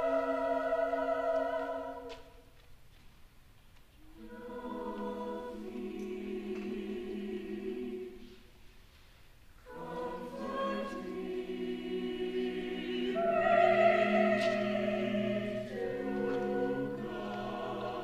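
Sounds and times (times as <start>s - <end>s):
choir singing sustained chords: 0.0s - 2.4s, 4.0s - 8.5s, 9.6s - 18.0s.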